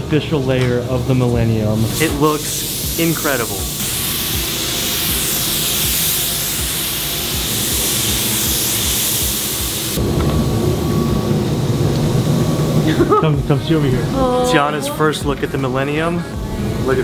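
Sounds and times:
background music with low beat: 0:00.0 - 0:11.3, 0:13.4 - 0:17.0
paint spray gun hissing: 0:01.8 - 0:10.0.

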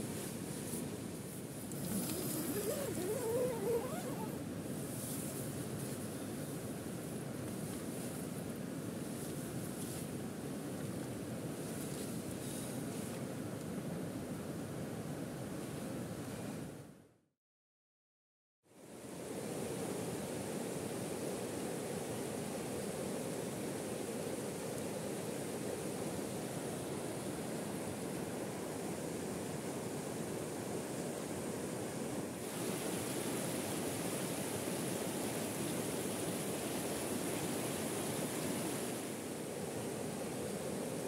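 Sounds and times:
river rushing over rocks: 0:01.8 - 0:04.3.

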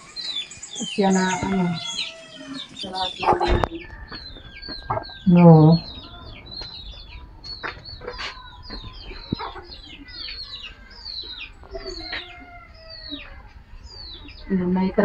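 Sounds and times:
birds peeping rapidly: 0:00.0 - 0:15.0.

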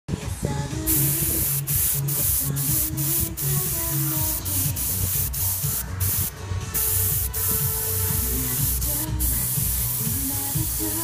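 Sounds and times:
background music: 0:00.1 - 0:11.0
airbrush spraying hiss: 0:00.9 - 0:11.0.

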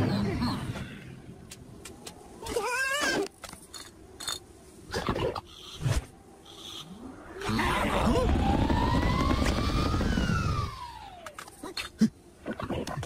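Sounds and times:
cartoon rushing rumble: 0:07.2 - 0:11.2.

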